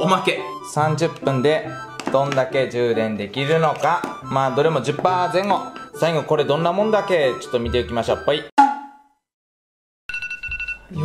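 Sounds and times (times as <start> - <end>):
two-pitched electronic alarm tone: 10.1 - 11.0.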